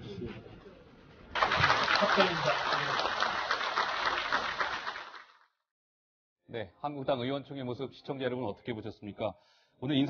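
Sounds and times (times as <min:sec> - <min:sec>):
applause: 0:01.3 - 0:05.6.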